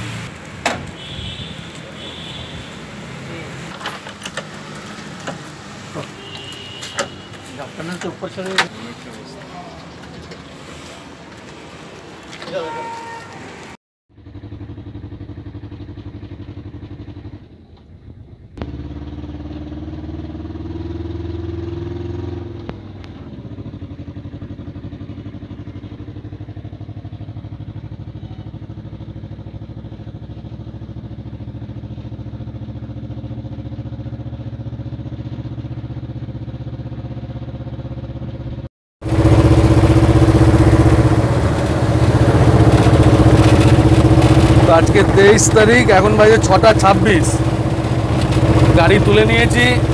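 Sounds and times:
truck engine running: 0:22.2 - 0:49.9.

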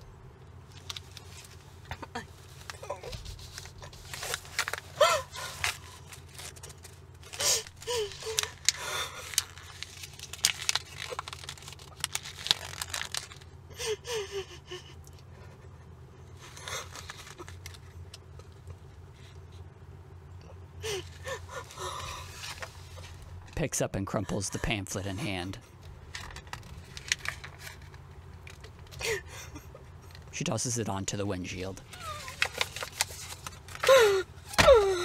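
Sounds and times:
low steady hum: 0:00.0 - 0:35.0
woman sobbing: 0:04.9 - 0:06.0, 0:07.3 - 0:09.6, 0:13.6 - 0:17.6, 0:20.7 - 0:22.4, 0:24.1 - 0:25.5, 0:28.9 - 0:30.1, 0:31.8 - 0:32.7, 0:33.7 - 0:35.0.

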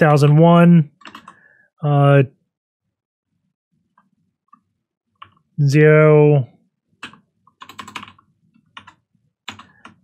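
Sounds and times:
computer keyboard typing: 0:01.0 - 0:01.4, 0:07.0 - 0:10.0.

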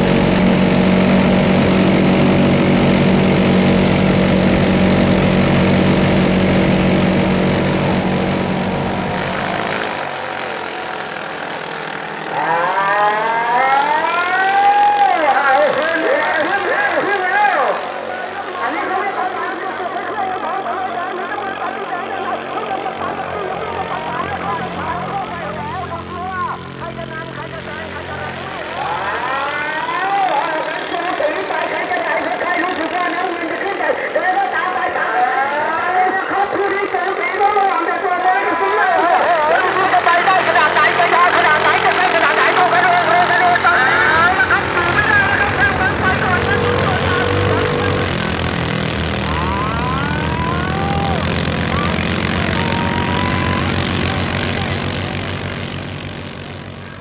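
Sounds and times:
engines running hard: 0:00.0 - 0:57.0
people shouting: 0:49.1 - 0:54.8.

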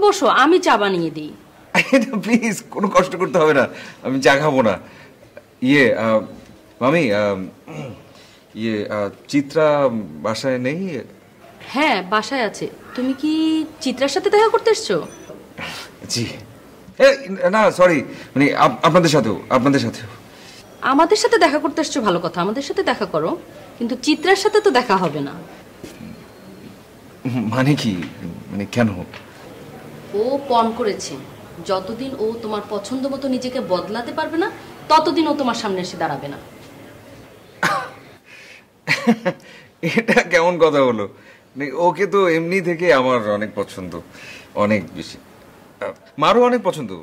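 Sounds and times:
woman talking: 0:00.0 - 0:01.4, 0:11.6 - 0:15.2, 0:20.8 - 0:25.5, 0:30.1 - 0:36.5.

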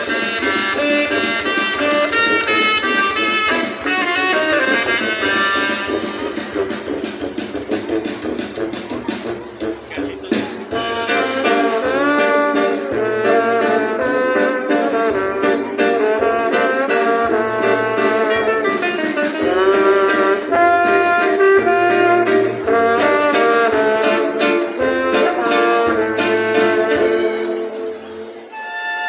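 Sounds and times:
steady drum beat: 0:00.0 - 0:15.7
brass band playing live: 0:00.0 - 0:29.0
trombone: 0:00.0 - 0:29.0.

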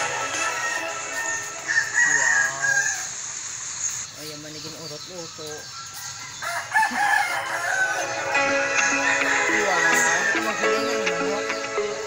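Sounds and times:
quiet background music: 0:00.0 - 0:02.4, 0:07.4 - 0:12.0
rooster crowing: 0:00.0 - 0:03.2, 0:06.0 - 0:10.8.

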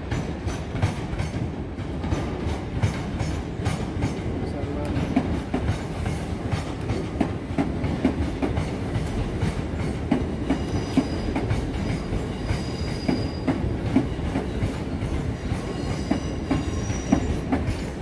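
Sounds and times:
low train rumble: 0:00.0 - 0:18.0
train wheels clicking over rail joints: 0:00.0 - 0:18.0
faint high wheel squeal: 0:10.6 - 0:13.6, 0:15.4 - 0:17.5.

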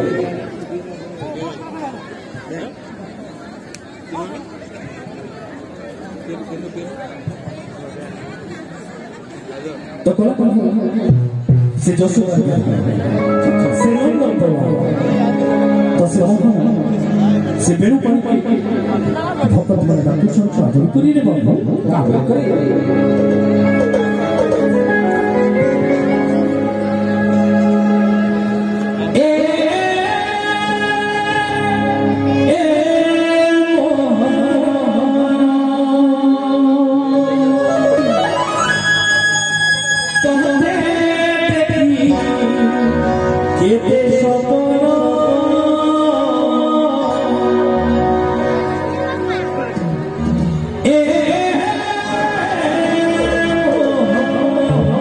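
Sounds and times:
people chattering: 0:00.0 - 0:55.0
sustained keyboard chord: 0:13.0 - 0:19.4, 0:22.0 - 0:29.2
person singing a long high note: 0:22.6 - 0:55.0.

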